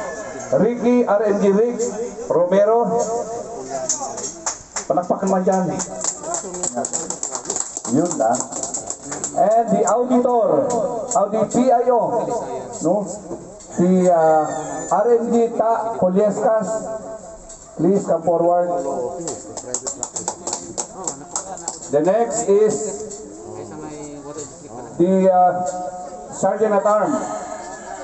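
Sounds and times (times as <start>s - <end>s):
people clapping: 3.8s - 10.0s, 19.2s - 22.2s
scattered applause: 3.9s - 9.6s, 19.2s - 22.0s.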